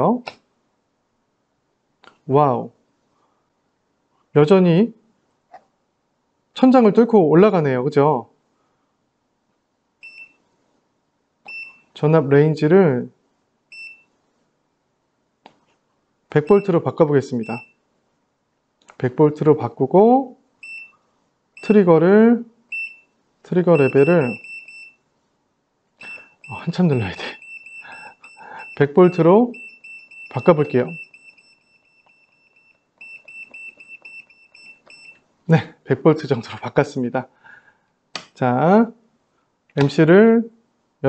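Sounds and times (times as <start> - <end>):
electronic key beep: 17.4 - 17.7, 23.7 - 24.9, 26.0 - 35.2.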